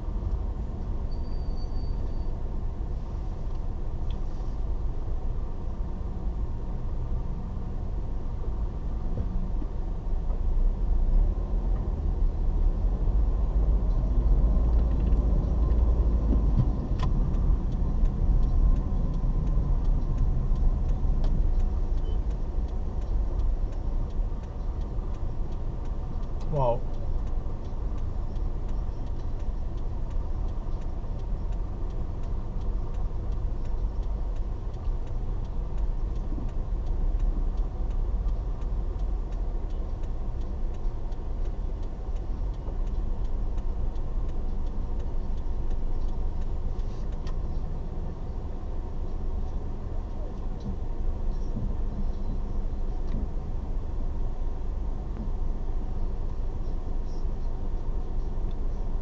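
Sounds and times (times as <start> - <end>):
car engine rumble: 0.0 - 59.0
surrounding traffic: 0.0 - 59.0.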